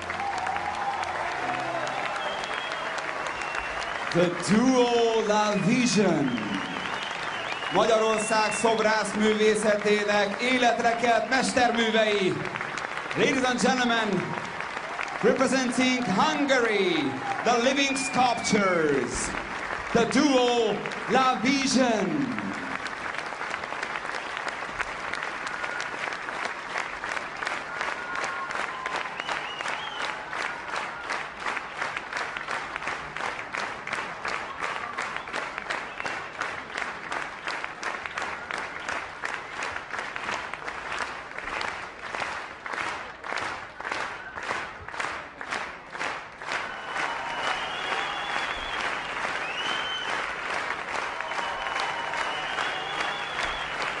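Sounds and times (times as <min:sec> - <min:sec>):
audience applauding: 0:00.0 - 0:54.0
rhythmic clapping in unison: 0:00.0 - 0:54.0.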